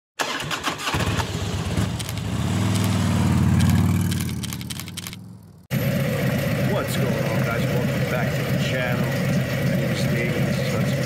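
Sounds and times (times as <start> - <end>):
motorcycle engine running: 0.9 - 11.0.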